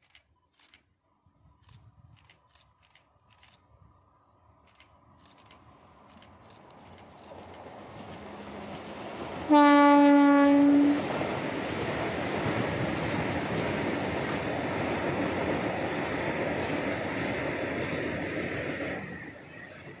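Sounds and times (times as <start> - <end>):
train running noise: 4.5 - 20.0
train horn blast: 9.5 - 11.1.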